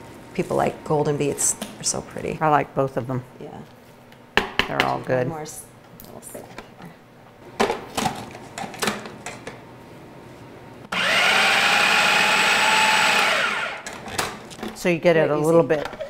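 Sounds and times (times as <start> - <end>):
food processor motor whine: 10.9 - 13.9.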